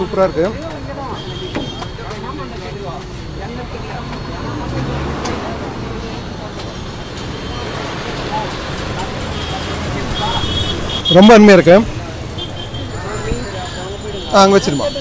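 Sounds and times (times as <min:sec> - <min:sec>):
traffic rumble: 0:00.0 - 0:15.0
voices: 0:00.0 - 0:15.0.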